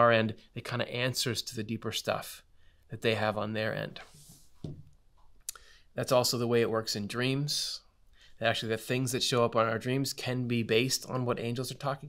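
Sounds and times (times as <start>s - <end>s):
man speaking: 0.0s - 4.2s, 6.0s - 12.0s
mouth click: 5.4s - 5.7s
soft breath: 5.5s - 6.0s.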